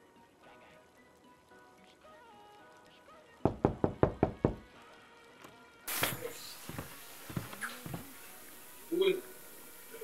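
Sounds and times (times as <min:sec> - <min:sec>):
faint background music: 0:00.0 - 0:10.0
knocks on a door: 0:03.4 - 0:04.7.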